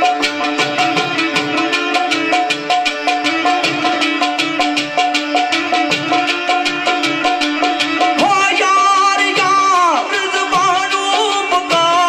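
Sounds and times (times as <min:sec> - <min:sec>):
sitar melody: 0:00.0 - 0:12.0.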